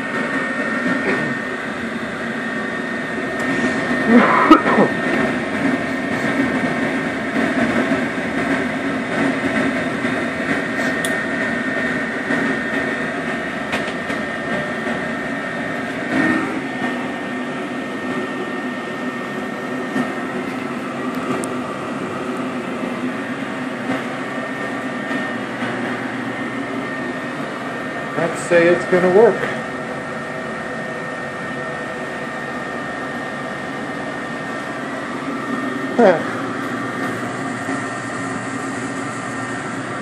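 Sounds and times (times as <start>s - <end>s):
thin high whine: 0.0s - 8.5s, 9.1s - 40.0s
furnace burners whirring: 0.0s - 40.0s.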